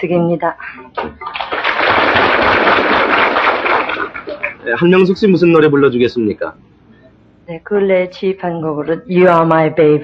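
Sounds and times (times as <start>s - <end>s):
audience applauding: 1.0s - 4.8s.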